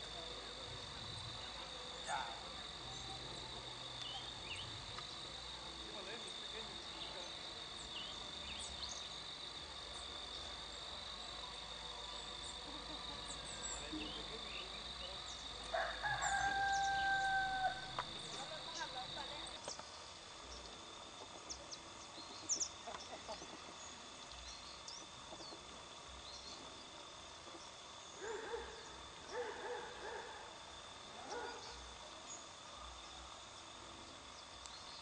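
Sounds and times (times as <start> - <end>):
high-pitched insect drone: 0.0 - 35.0
rooster crowing: 15.7 - 18.1.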